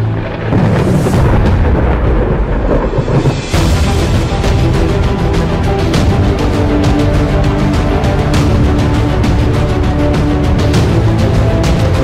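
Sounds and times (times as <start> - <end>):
rumbling thunder-like boom: 0.0 - 7.4
dramatic theme music: 0.0 - 12.0.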